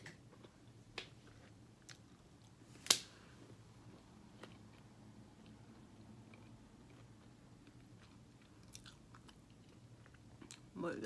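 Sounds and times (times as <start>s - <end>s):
faint chewing: 3.4s - 10.7s.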